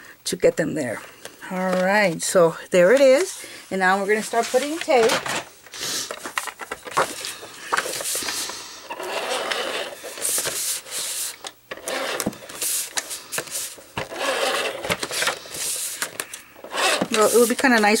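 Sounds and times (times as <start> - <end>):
paper sliding and rustling: 4.1 - 5.4, 6.0 - 18.0.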